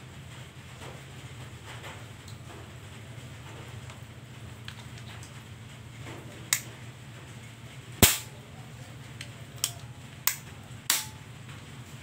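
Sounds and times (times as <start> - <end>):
air rifle shot crack: 8.0 - 8.3.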